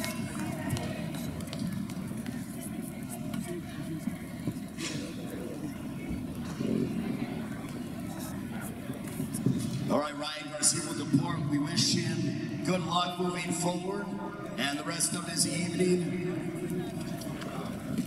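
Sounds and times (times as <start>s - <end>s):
crowd voices talking and calling out: 0.0s - 18.0s.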